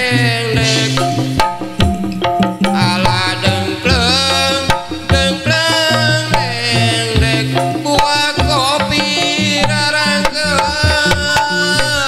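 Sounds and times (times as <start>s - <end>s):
hand drum strokes: 0.0s - 12.0s
live band playing: 0.0s - 12.0s.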